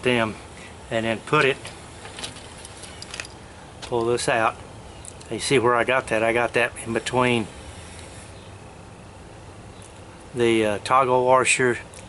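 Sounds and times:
small metallic clicks and scrapes: 1.4 - 4.2.

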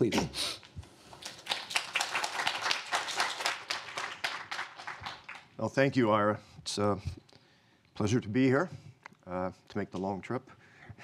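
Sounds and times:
audience applauding: 1.1 - 5.6.

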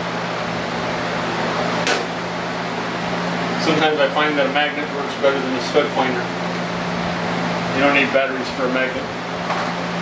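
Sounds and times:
machine humming: 0.0 - 10.0.

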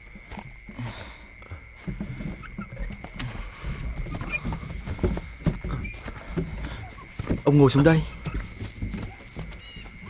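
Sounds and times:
footsteps and shuffling: 0.0 - 10.0.

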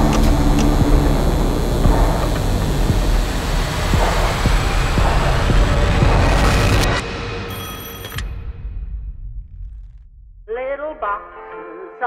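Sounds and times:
low rumbling drone: 0.0 - 10.7.

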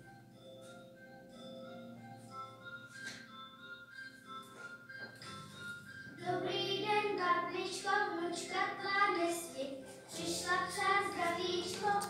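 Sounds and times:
music with held notes: 0.0 - 12.0
children singing: 6.2 - 12.0.

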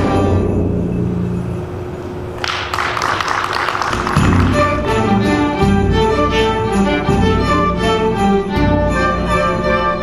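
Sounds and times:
audience applause: 2.4 - 5.0.

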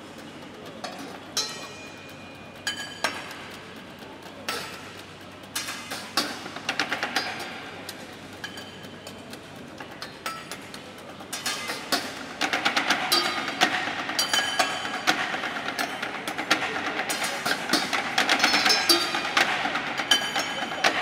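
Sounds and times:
knives striking metal pots and pans: 0.9 - 1.9, 11.3 - 21.0.

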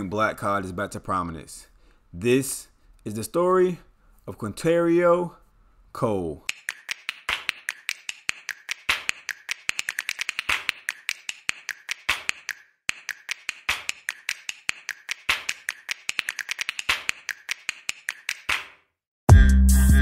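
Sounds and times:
dry percussive clicks and snaps: 6.5 - 18.8.

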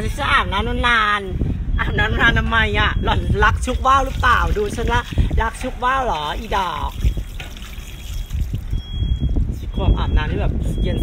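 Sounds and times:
water poured and trickling: 3.6 - 8.9.

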